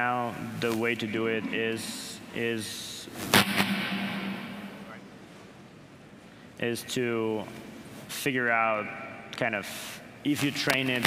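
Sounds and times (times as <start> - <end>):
low steady hum: 0.0 - 11.0
sharp reverberant bang: 3.2 - 5.2.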